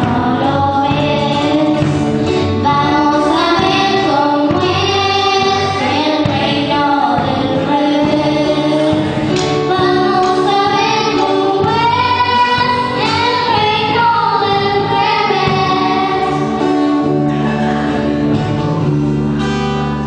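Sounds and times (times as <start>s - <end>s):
girls singing: 0.0s - 17.0s
acoustic guitars: 0.0s - 20.0s
electric bass: 0.0s - 20.0s.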